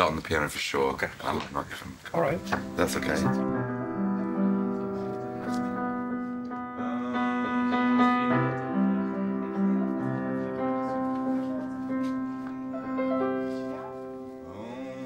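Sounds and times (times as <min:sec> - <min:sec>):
piano playing slow chords: 0:02.1 - 0:15.0.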